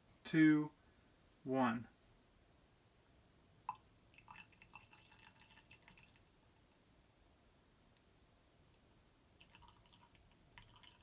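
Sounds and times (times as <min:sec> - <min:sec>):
liquid drip into test tube: 0:03.6 - 0:06.8, 0:08.7 - 0:11.0.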